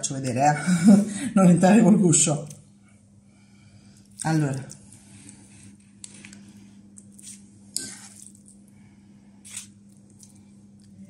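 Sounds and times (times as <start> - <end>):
faint steady hum: 0.0 - 11.0
soft wet squishes: 3.8 - 11.0.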